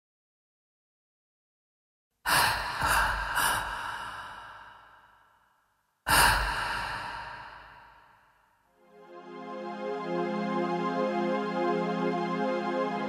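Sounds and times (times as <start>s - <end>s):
steady music tones: 8.7s - 13.0s.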